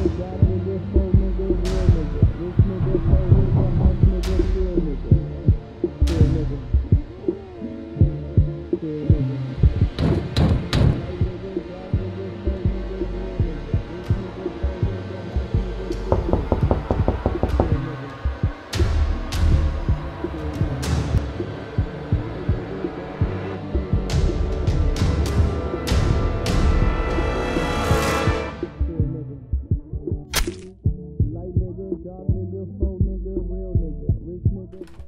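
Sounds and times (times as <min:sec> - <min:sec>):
heavy bass thumps: 0:00.4 - 0:07.3, 0:16.0 - 0:27.0, 0:28.8 - 0:34.8.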